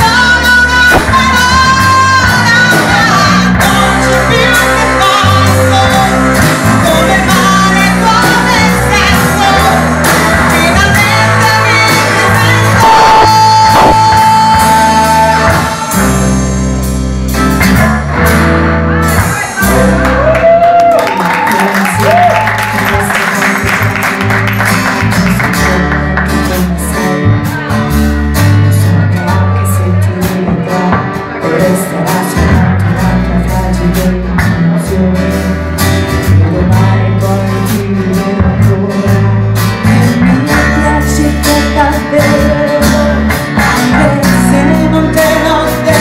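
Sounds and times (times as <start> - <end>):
woman singing: 0.0 - 16.5, 28.5 - 46.0
acoustic guitar strumming: 0.0 - 20.2
bass line: 0.0 - 46.0
live band playing pop ballad: 0.0 - 46.0.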